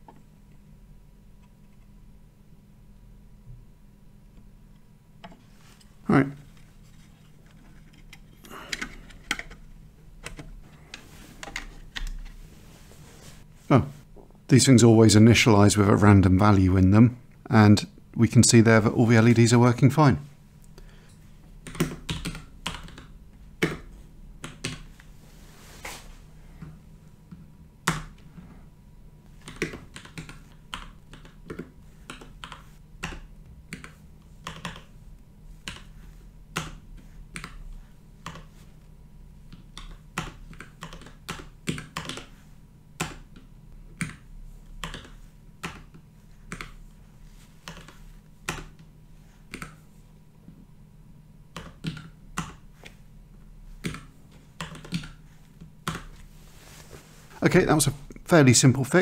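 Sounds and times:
computer keyboard typing: 21.6 - 24.9, 29.4 - 35.0, 35.6 - 38.5, 39.5 - 42.4, 43.0 - 46.8, 47.6 - 48.8, 51.5 - 52.6, 53.8 - 55.2.

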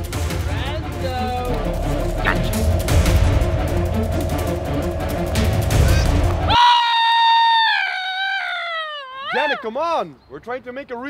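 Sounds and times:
dramatic music: 0.0 - 6.7
man screaming high-pitched: 6.5 - 9.8.

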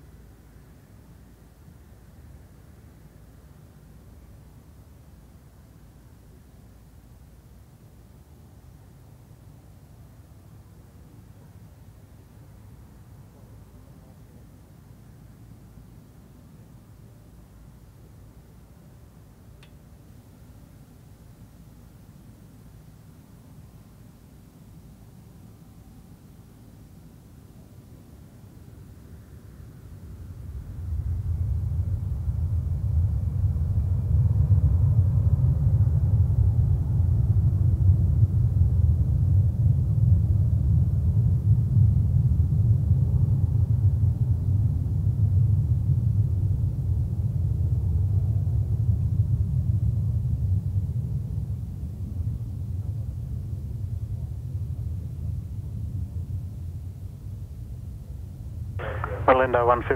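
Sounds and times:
faint high whine: 56.6 - 59.9
jet engines rumbling: 58.8 - 59.9.

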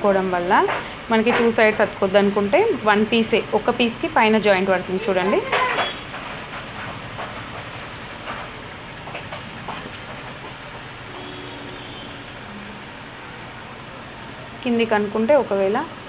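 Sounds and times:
steady background noise: 0.0 - 16.0.

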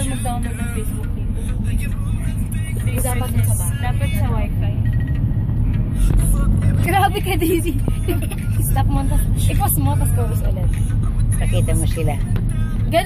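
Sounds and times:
van engine and road rumble: 0.0 - 13.0.

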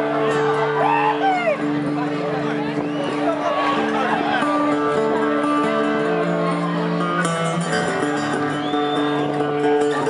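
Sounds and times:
audience whooping and calling out: 0.0 - 5.0.

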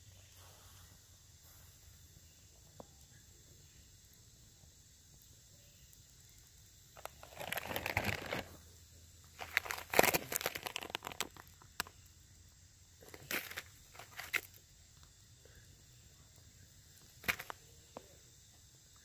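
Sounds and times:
food pouches crinkling: 7.0 - 8.6, 9.3 - 11.9, 13.0 - 14.6, 17.1 - 17.6.

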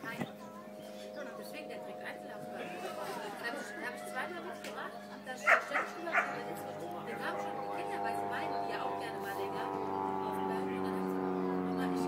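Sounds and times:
dog barking: 5.4 - 6.4.

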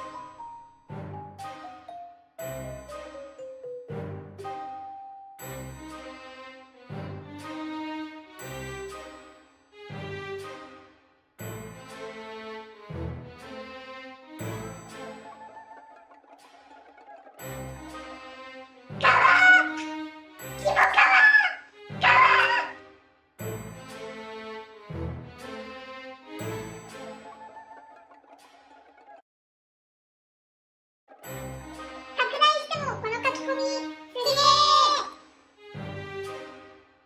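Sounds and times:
quiet background music: 0.0 - 29.2, 31.2 - 37.0
person squealing: 19.0 - 19.8, 20.6 - 22.8, 34.2 - 35.1.

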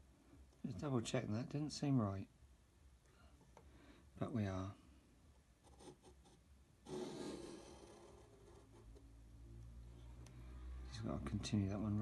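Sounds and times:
pencil scraping across paper: 5.6 - 9.0.

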